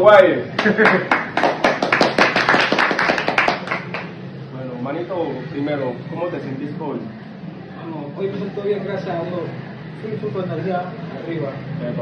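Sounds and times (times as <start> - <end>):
hands clapping: 0.6 - 4.2.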